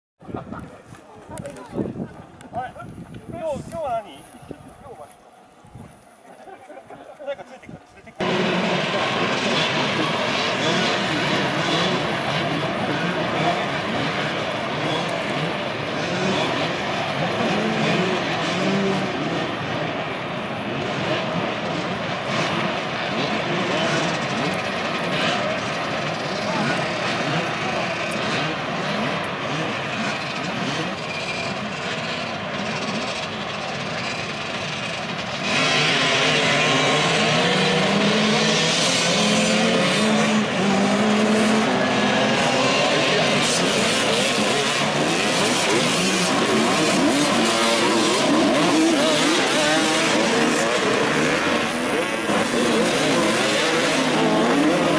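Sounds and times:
dirt bike engines revving: 0.2s - 54.9s.

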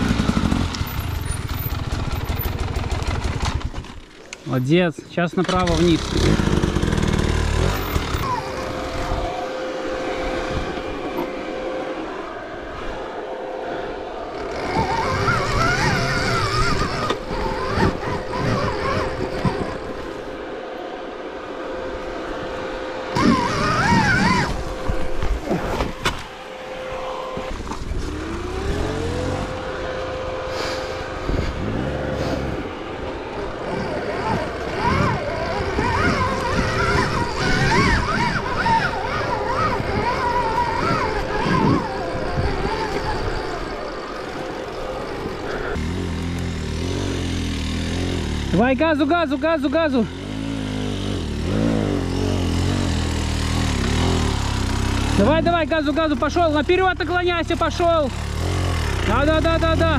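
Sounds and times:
dirt bike motor whining: 0.0s - 59.9s.

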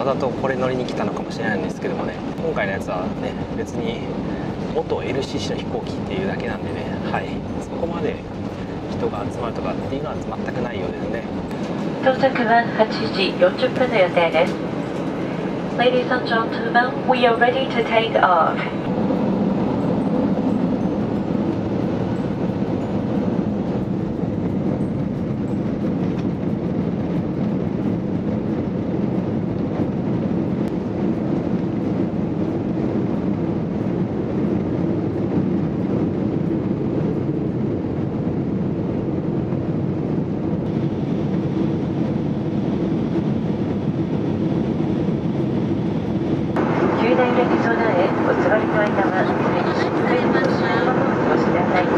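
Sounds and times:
airframe rumble rolling along: 0.0s - 51.9s
jet engines running at low power: 0.0s - 51.9s.

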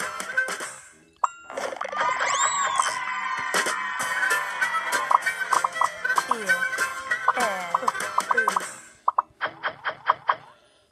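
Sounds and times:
children's game music: 0.0s - 10.3s.

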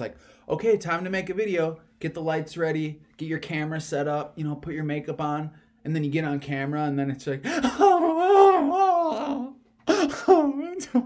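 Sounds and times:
man imitating crying: 7.4s - 11.0s.

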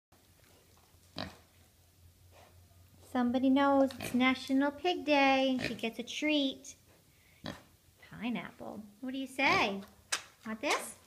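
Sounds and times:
pig grunting: 1.1s - 1.5s, 7.4s - 7.7s.

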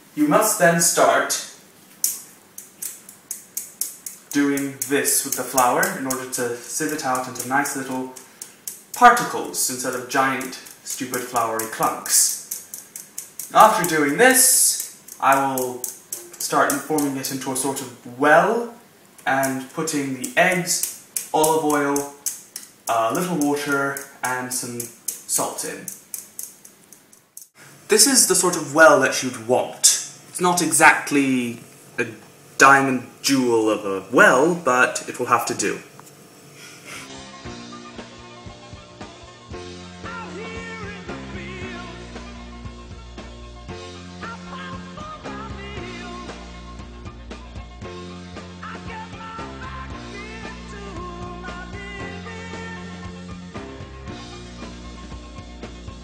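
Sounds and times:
metal sieve rattling taps: 2.0s - 17.4s, 19.4s - 27.5s.

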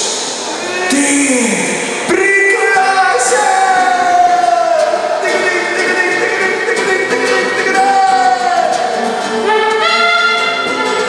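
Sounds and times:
acoustic guitars strummed and picked: 2.0s - 11.0s
held sliding melody note: 5.2s - 11.0s.

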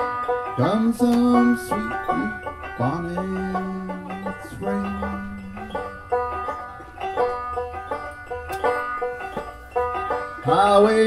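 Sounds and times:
banjo picking: 0.0s - 11.0s.

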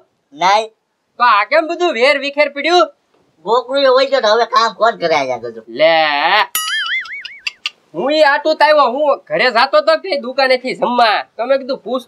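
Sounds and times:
man speaking: 0.0s - 6.6s, 7.9s - 12.0s
wobbling cartoon tone: 6.5s - 7.7s.

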